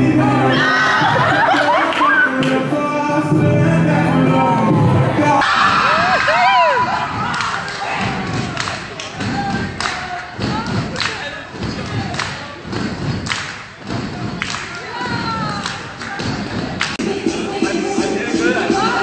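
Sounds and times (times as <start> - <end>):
echoing thuds in gym hall: 4.9 - 17.0.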